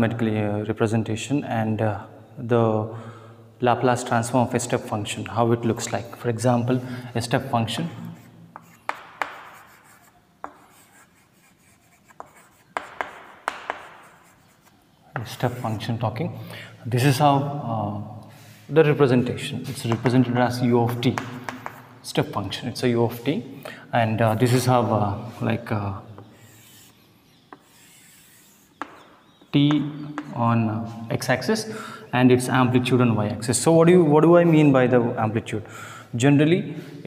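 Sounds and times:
chalk scratching on chalkboard: 8.0 - 16.0, 26.2 - 29.5
chalk tapping on board: 8.1 - 15.8, 19.9 - 20.1, 20.9 - 21.9, 26.2 - 30.4.

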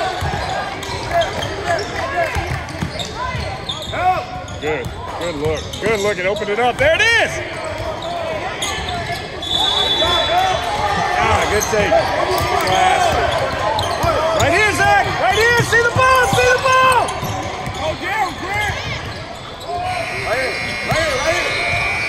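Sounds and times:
voices in a gym: 0.0 - 22.0
sneaker squeaks on hardwood floor: 0.2 - 6.6, 7.6 - 22.0.

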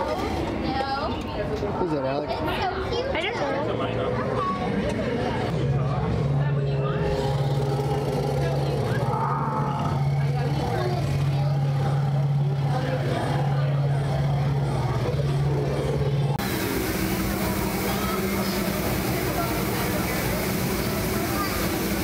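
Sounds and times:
background chatter: 0.0 - 22.0
steady low hum: 5.4 - 22.0.

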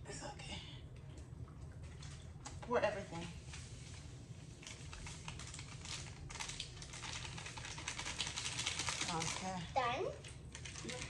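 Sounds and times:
crystals crackling in water: 3.4 - 11.0
powder pouring from paper packet: 4.6 - 9.6.

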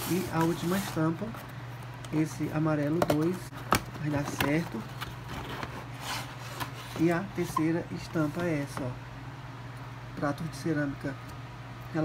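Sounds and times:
cardboard rubbing and scraping: 0.0 - 1.4, 4.0 - 8.7.

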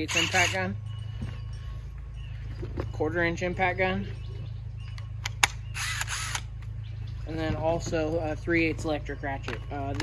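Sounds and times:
impact driver motor whir: 0.1 - 0.6, 5.8 - 6.5.

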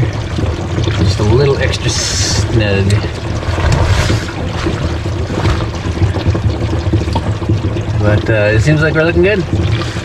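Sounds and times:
low steady hum: 0.0 - 10.0
water pouring into a tank: 0.0 - 10.0.

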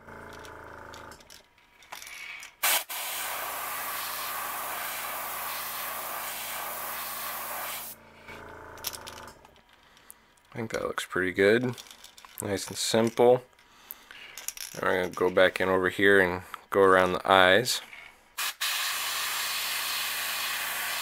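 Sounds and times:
airbrush spraying hiss: 2.6 - 8.0, 18.4 - 21.0.

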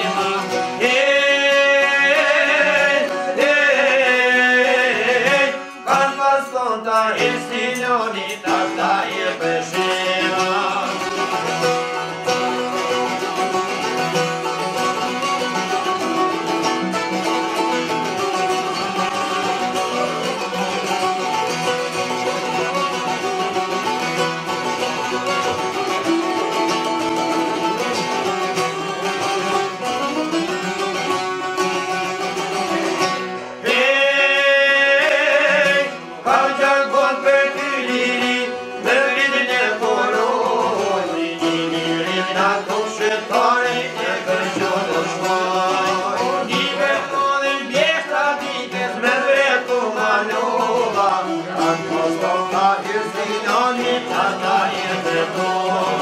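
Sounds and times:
man singing: 0.0 - 11.8, 33.6 - 56.0
plucked lutes playing folk music: 0.0 - 56.0.

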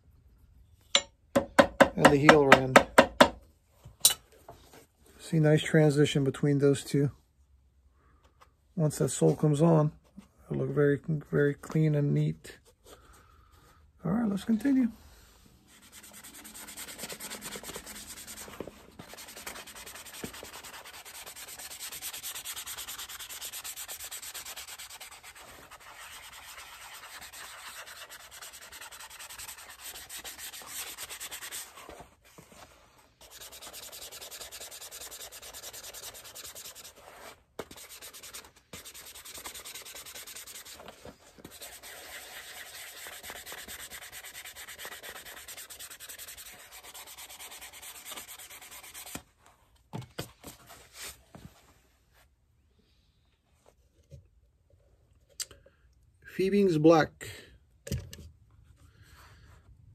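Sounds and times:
sanding leather boot: 15.7 - 32.0, 33.2 - 49.2.

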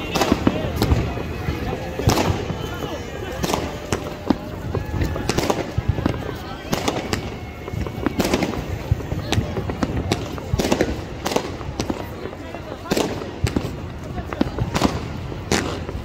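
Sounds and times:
fireworks bangs: 0.0 - 16.0
fireworks crackle and rumble: 0.0 - 16.0.

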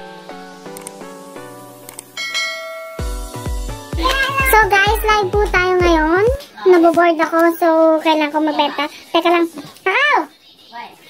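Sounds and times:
bell-like jingle: 2.2 - 3.3
bright sustained chime: 2.2 - 3.3.

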